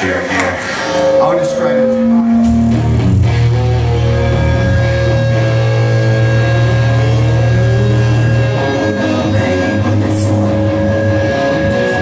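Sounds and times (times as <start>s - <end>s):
distorted electric guitars: 0.0s - 12.0s
live rock band playing: 0.8s - 12.0s
bass holding low notes: 1.2s - 12.0s.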